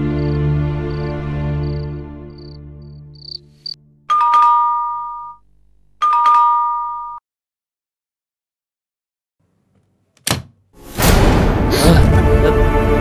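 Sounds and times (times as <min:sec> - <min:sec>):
background music: 0:00.0 - 0:04.2, 0:10.8 - 0:13.0
electronic doorbell ding-dong: 0:04.1 - 0:05.4, 0:06.0 - 0:07.2.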